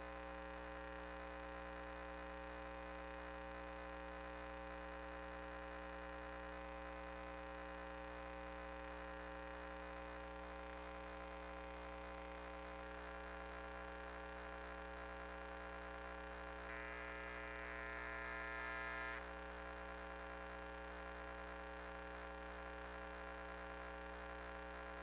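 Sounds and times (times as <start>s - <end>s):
faint electrical hum: 0.0s - 25.0s
high-pitched whine: 16.7s - 19.2s.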